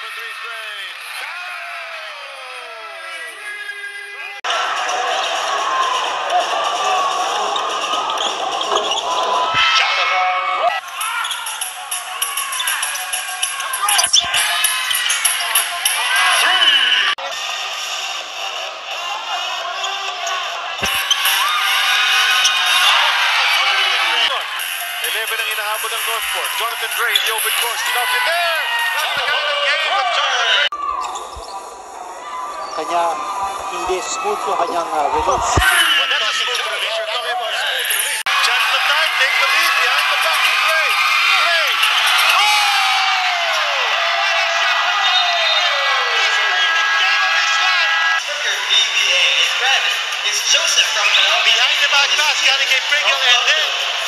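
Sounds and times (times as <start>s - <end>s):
arena crowd noise: 0.0s - 54.0s
sneakers squeaking: 4.8s - 10.0s, 10.9s - 17.1s, 20.1s - 23.7s, 30.7s - 36.6s.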